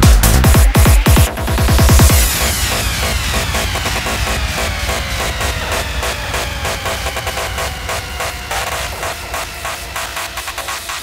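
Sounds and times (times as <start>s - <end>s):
psytrance dance music: 0.0s - 11.0s.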